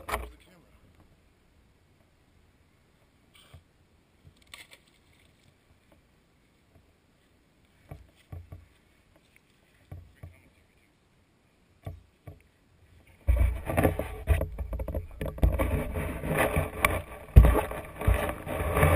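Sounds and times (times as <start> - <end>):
camera handling rumbling and rustling: 13.2 - 18.9.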